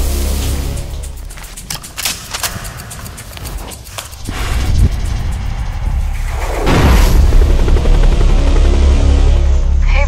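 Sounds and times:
sharp clicks and knocks: 0:01.4 - 0:05.0
deep rumble: 0:04.0 - 0:10.0.

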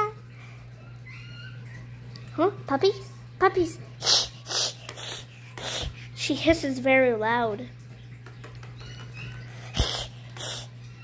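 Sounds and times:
child imitating cat hiss: 0:04.0 - 0:06.3, 0:09.6 - 0:10.8.

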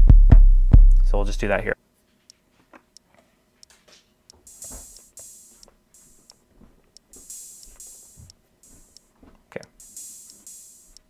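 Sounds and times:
drum machine hits: 0:00.0 - 0:01.4, 0:04.5 - 0:06.4, 0:07.1 - 0:09.0, 0:09.6 - 0:11.0
finger taps on pads: 0:07.0 - 0:09.0.

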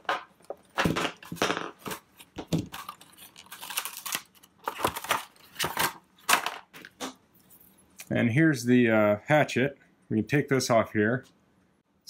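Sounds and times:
stiff plastic crackling: 0:01.2 - 0:07.1.

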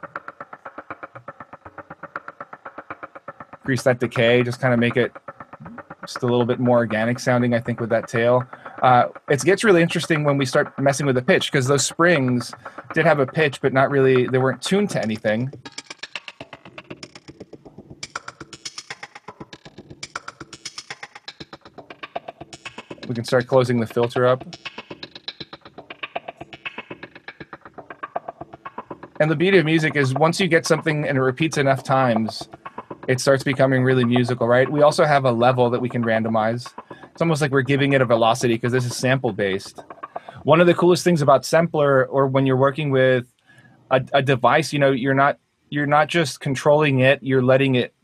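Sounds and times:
rapid sampled spring hits: 0:00.0 - 0:42.0.

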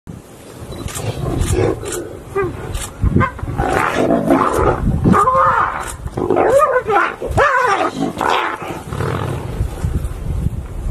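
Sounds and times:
wind rumble on microphone: 0:00.1 - 0:10.9.

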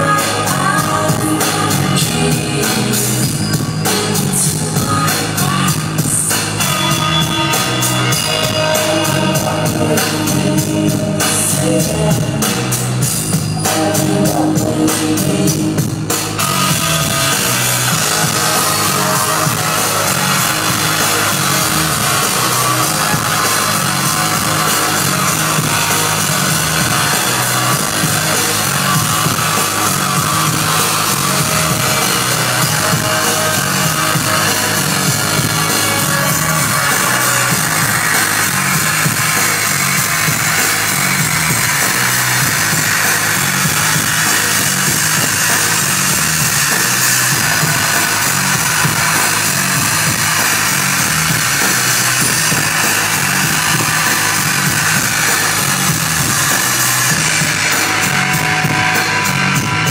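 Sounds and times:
distorted electric guitar: 0:00.0 - 0:59.9
drums and bass beat: 0:00.0 - 0:59.9.

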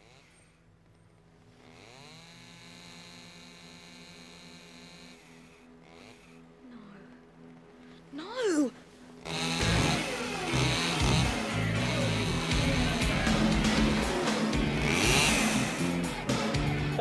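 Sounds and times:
chainsaw revving: 0:00.0 - 0:00.7, 0:01.4 - 0:06.5, 0:09.2 - 0:17.0
music playing: 0:06.6 - 0:17.0.

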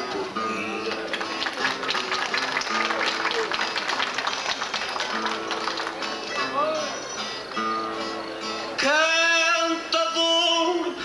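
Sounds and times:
audience applause: 0:00.0 - 0:07.0
plucked guitars playing: 0:00.0 - 0:11.0.

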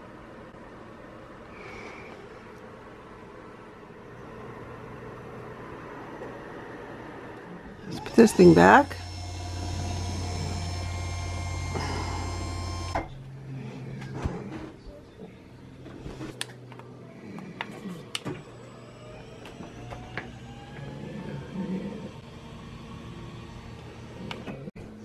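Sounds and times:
faint rising whine: 0:00.0 - 0:14.1, 0:18.3 - 0:25.0
electric motor humming and whining: 0:07.8 - 0:13.3, 0:18.0 - 0:24.7.

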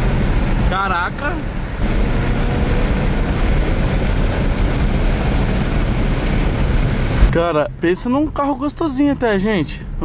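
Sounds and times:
car engine at speed: 0:00.0 - 0:07.4
road and wind noise: 0:00.0 - 0:10.0.

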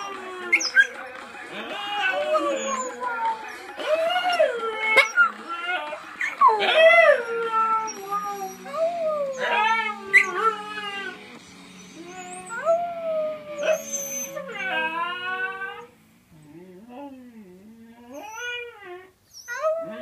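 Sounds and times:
dog howling: 0:00.0 - 0:20.0.

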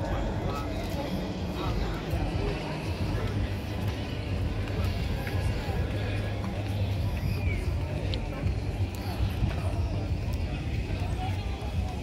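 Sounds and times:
faint voices: 0:00.0 - 0:12.0
low steady microphone rumble: 0:00.0 - 0:12.0.

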